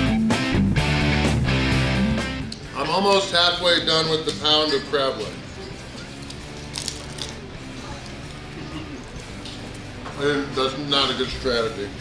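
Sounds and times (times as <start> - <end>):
quiet background music: 0.8 - 12.0
crab shells cracking: 6.2 - 7.4.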